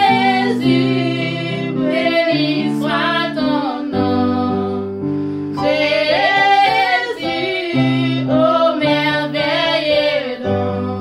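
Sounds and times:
instrumental backing music: 0.0s - 11.0s.

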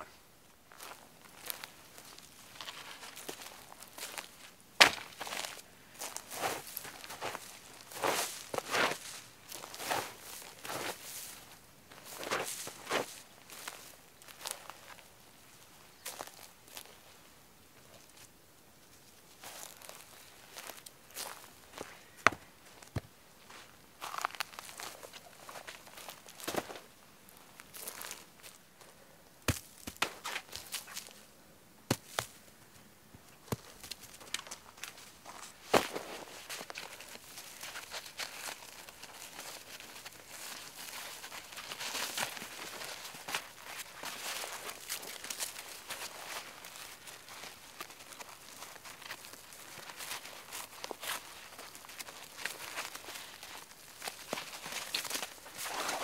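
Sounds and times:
footsteps crunching on forest floor: 0.7s - 17.1s, 17.9s - 28.9s, 29.5s - 31.2s, 31.9s - 56.0s.

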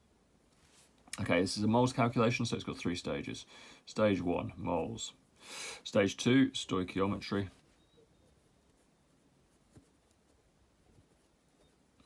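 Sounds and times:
pen scratching on paper: 8.2s - 11.8s.

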